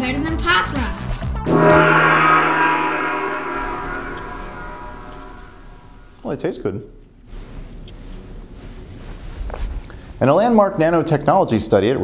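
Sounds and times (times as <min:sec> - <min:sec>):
gong ringing: 0:01.4 - 0:06.3.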